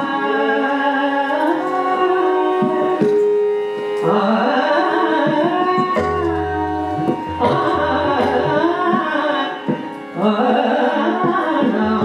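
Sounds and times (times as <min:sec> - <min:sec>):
harmonium: 0:00.0 - 0:12.0
woman singing ornamented phrases: 0:04.2 - 0:09.6
tabla strokes: 0:05.1 - 0:12.0.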